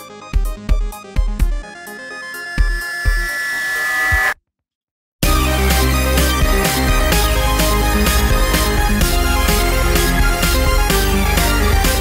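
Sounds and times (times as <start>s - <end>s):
electronic background music: 0.0s - 4.4s.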